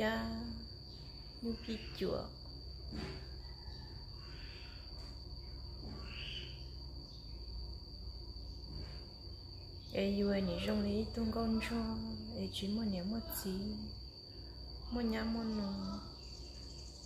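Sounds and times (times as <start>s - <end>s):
high-pitched insect trill: 0.0s - 17.0s
low steady hum: 0.0s - 17.0s.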